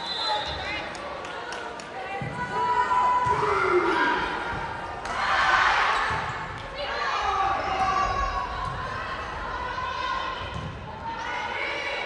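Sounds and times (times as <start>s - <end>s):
people calling out and chattering: 0.0s - 12.0s.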